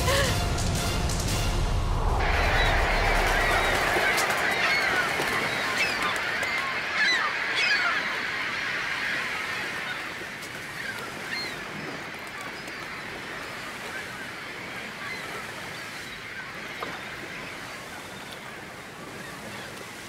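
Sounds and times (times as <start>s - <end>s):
steady wash of noise: 0.6s - 9.4s
gulls calling: 1.9s - 20.0s.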